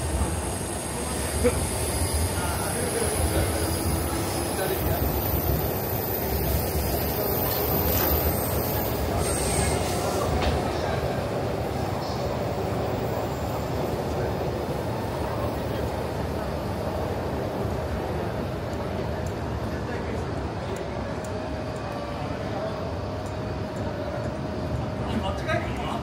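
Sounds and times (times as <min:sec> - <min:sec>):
train rumbling on rails: 0:00.0 - 0:26.0
high wheel squeal: 0:08.2 - 0:10.3.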